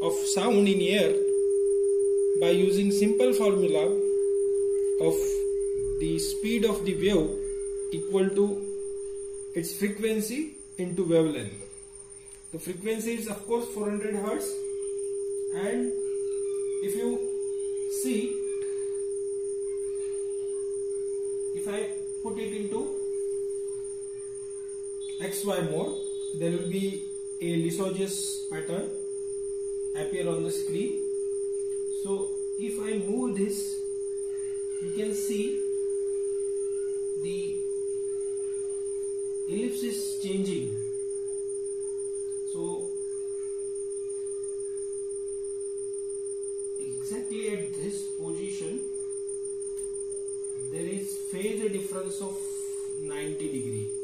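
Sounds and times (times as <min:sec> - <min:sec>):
steady sine tone: 0:00.0 - 0:54.0.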